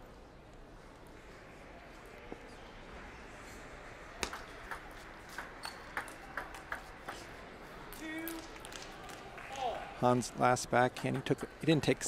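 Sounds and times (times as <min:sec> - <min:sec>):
table tennis ball clicking: 0:04.2 - 0:07.2.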